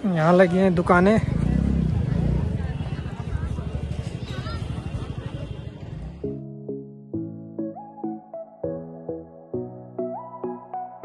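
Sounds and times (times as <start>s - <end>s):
vehicle engine running: 0.8s - 6.3s.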